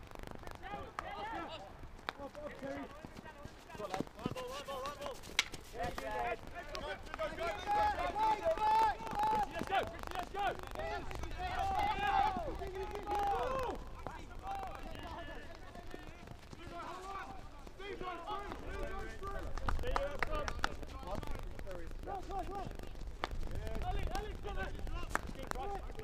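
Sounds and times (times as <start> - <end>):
players shouting: 0.4 - 21.4, 22.0 - 23.0
hockey stick striking ball: 4.7 - 7.4.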